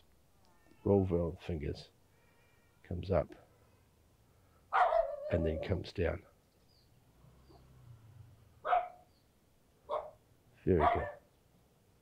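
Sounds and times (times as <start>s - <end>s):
person speaking: 5.3s - 6.2s.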